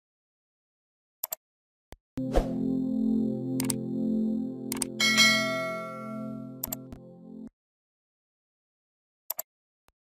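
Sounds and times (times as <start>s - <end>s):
low sustained music chords: 2.2s - 7.5s
bright bell ding: 5.0s - 6.7s.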